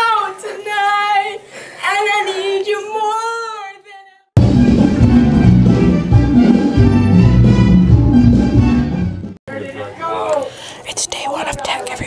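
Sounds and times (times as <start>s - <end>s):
person whispering: 10.8s - 12.0s.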